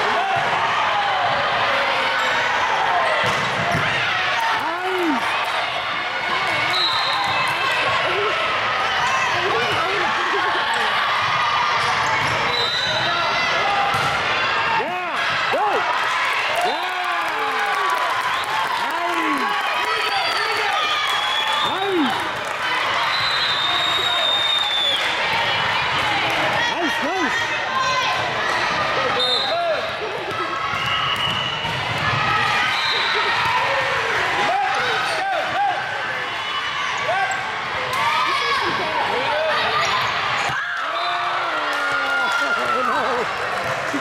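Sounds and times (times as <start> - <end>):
voices in reverberant gym: 0.0 - 44.0.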